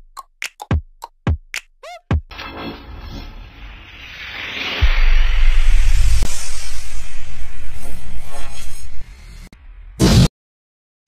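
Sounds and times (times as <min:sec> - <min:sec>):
sharp hit: 0:02.3 - 0:08.1.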